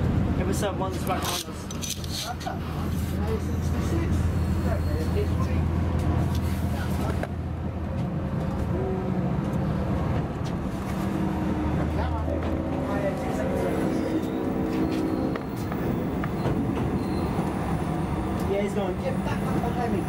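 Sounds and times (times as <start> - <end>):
diesel engine drone: 0.0 - 20.0
train rumble and wheel noise: 0.0 - 20.0.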